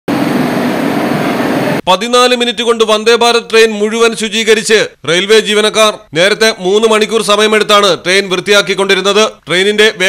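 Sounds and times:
loud steady rushing noise: 0.1s - 1.8s.

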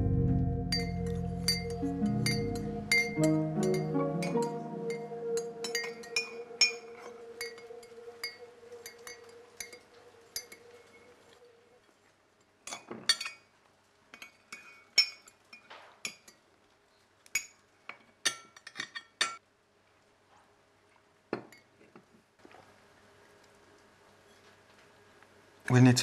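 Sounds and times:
background music with held notes: 0.0s - 10.7s
ceramic mugs clinking: 0.7s - 5.0s, 5.6s - 10.7s.

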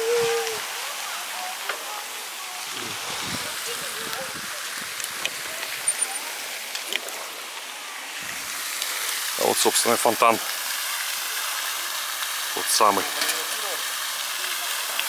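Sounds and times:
bicycle tyres hissing on asphalt: 0.0s - 15.0s.

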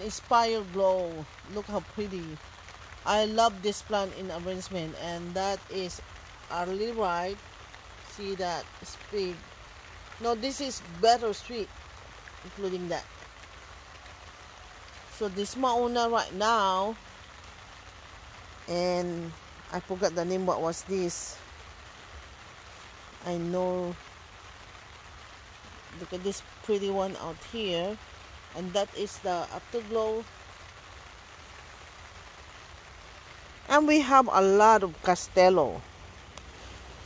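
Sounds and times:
steady rain falling: 0.0s - 37.0s.

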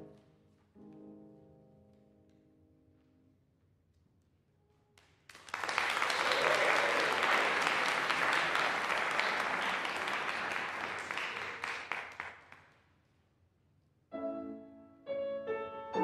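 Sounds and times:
audience applauding: 5.3s - 12.7s.

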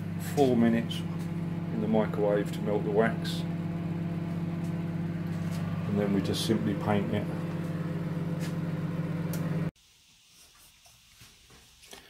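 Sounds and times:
kitchen appliance hum: 0.0s - 9.7s.

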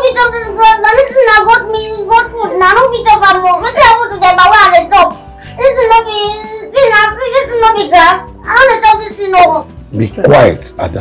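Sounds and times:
girl crying: 0.0s - 9.0s.

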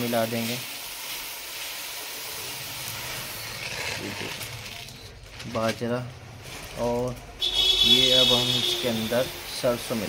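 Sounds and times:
grain pouring into plastic tub: 0.0s - 5.8s.

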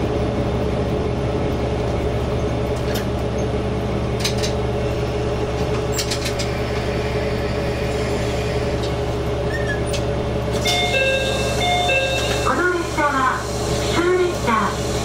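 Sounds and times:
diesel railcar engine idling: 0.0s - 15.0s.

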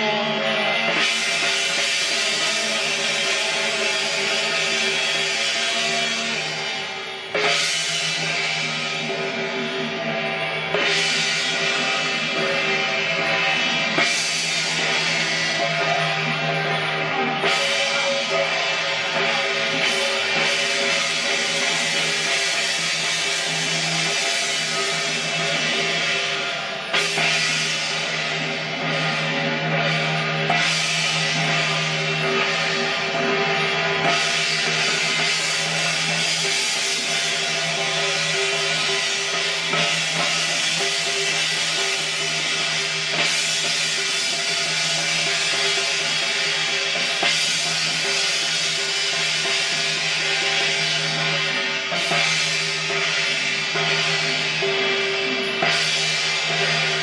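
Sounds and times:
drums: 0.0s - 57.0s
hand cymbals clashing: 0.0s - 57.0s.

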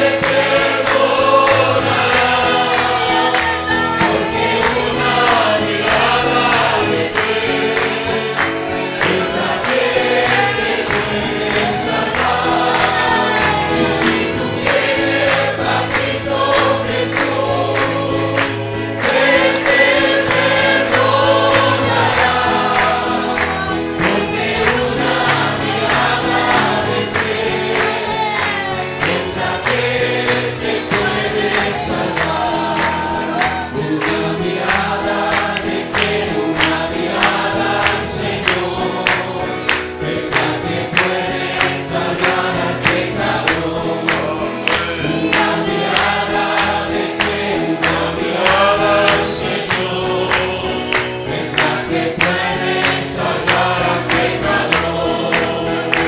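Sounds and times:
congregation singing a worship song: 0.0s - 56.0s
live band with amplified singers: 0.0s - 56.0s.

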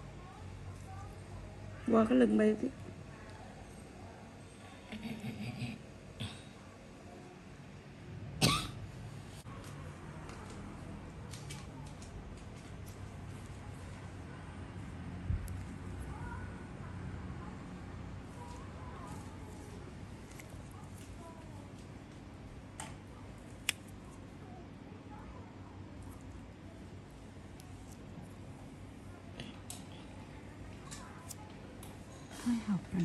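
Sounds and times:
low steady hum: 0.0s - 33.0s
person coughing: 8.4s - 8.8s.

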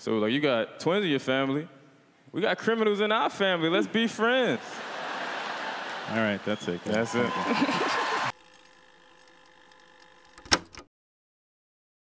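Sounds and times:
audience laughter: 3.8s - 8.3s.

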